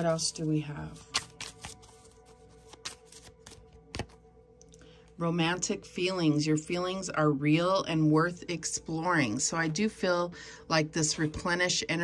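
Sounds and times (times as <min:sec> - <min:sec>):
cards being shuffled: 0:00.9 - 0:04.2.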